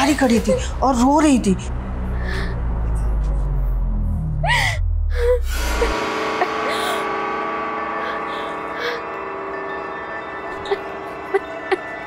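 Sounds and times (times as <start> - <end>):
low dark music drone: 0.0 - 12.0
girl sobbing: 4.4 - 7.1, 7.9 - 9.1, 10.6 - 12.0
sustained music chord: 5.5 - 12.0.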